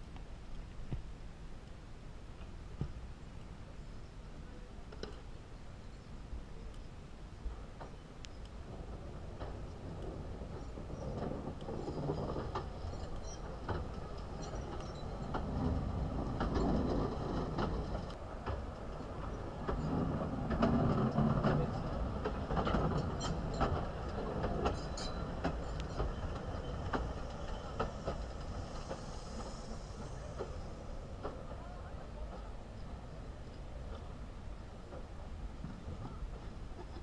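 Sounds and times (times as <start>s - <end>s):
steam train rumbling past: 7.3s - 37.0s
wheels clicking and clanking: 7.6s - 32.5s.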